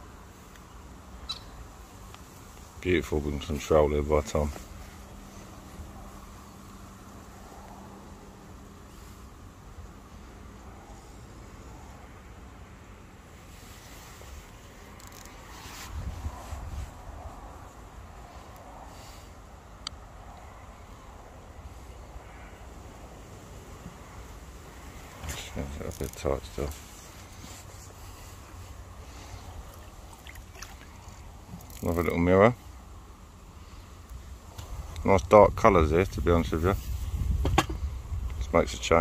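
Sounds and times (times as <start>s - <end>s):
wind rumbling on microphone: 13.5s - 19.2s, 34.2s - 39.0s.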